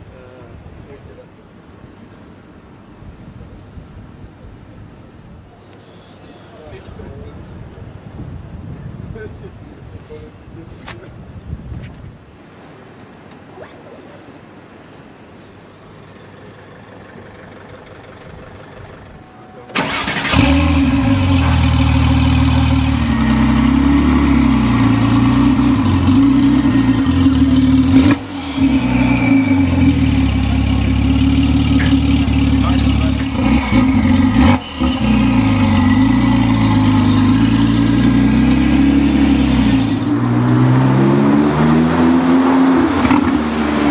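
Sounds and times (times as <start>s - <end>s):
car engine idling and revving: 16.1s - 43.9s
car engine starting: 17.0s - 43.9s.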